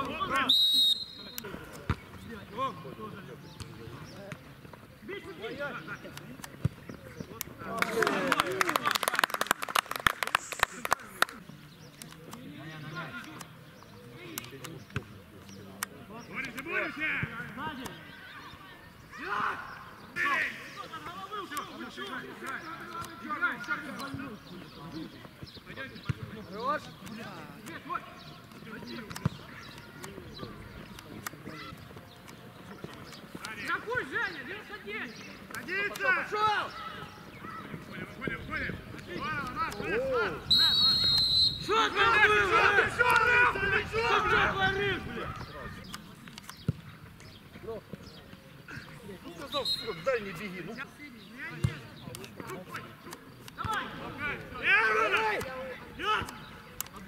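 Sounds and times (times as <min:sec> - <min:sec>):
players shouting calls: 0:00.0 - 0:57.0
people clapping: 0:07.6 - 0:11.5
men calling out: 0:41.6 - 0:45.5, 0:53.6 - 0:56.6.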